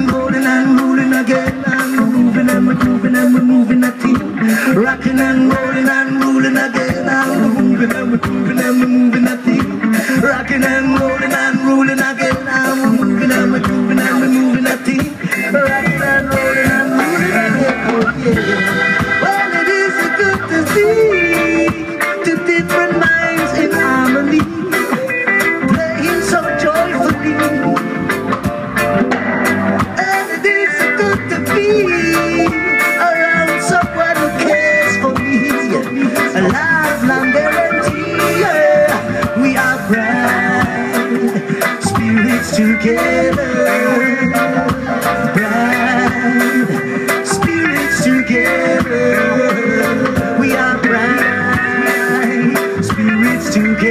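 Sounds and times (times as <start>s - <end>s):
reggae band playing: 0.0s - 53.9s.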